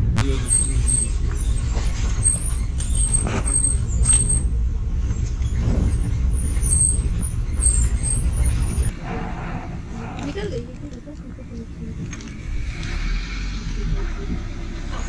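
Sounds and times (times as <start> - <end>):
engine and road rumble: 0.0 - 15.0.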